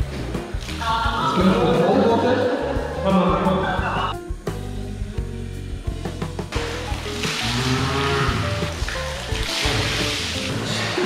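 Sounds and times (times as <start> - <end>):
background music with held notes: 0.0 - 11.0
water poured from metal bowl: 6.5 - 11.0.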